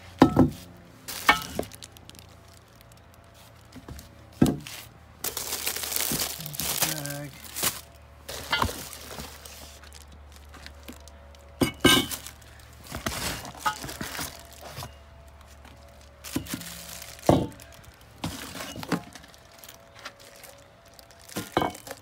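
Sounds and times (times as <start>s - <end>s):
plastic wrap crinkling: 1.1s - 22.0s.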